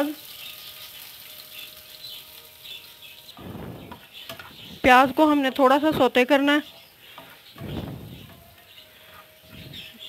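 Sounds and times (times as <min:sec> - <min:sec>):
onion sizzling in oil: 0:00.0 - 0:10.0
spatula scraping frying pan: 0:06.6 - 0:10.0.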